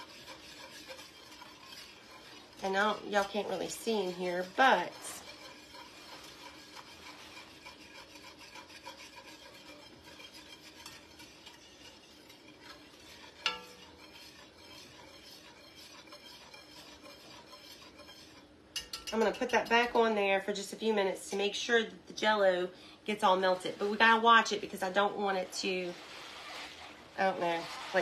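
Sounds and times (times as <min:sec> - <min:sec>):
whisk scraping in a pot: 0:00.0 - 0:21.6, 0:22.4 - 0:28.0.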